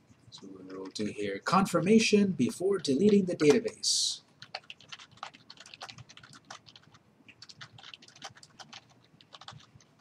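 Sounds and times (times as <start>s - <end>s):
keyboard typing: 0.4s - 1.1s, 2.4s - 3.8s, 4.4s - 10.0s.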